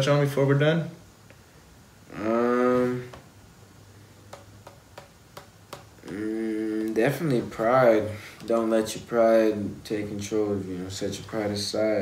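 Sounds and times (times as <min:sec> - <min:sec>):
man's drawn-out hesitation sounds: 0:02.0 - 0:03.3, 0:05.9 - 0:12.0.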